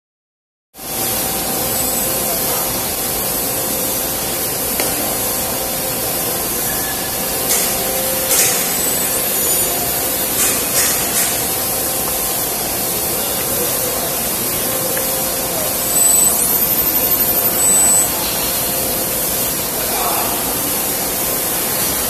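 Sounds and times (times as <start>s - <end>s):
laminating machine hissing: 5.4s - 19.6s
faint hum: 14.7s - 18.8s.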